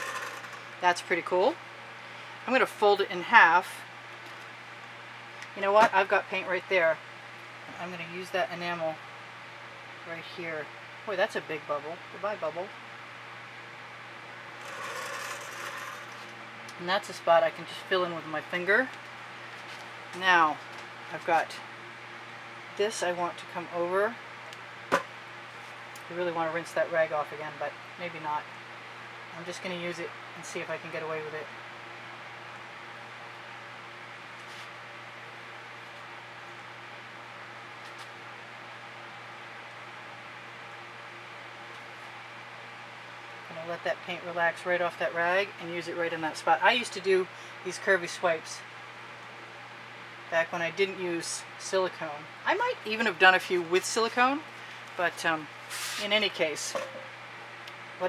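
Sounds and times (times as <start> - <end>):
low background hum: 0.0 - 58.0
even hiss: 55.7 - 56.2.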